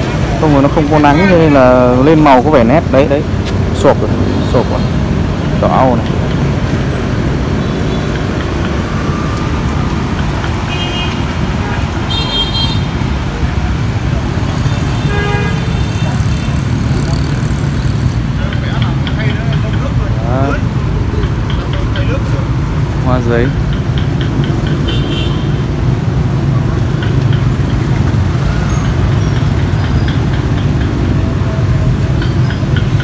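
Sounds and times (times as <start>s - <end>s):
motorbikes and cars passing: 0.0s - 33.0s.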